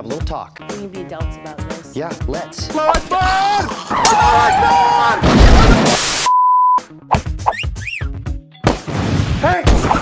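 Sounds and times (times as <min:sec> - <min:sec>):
steady electronic beep: 0:06.2 - 0:06.8.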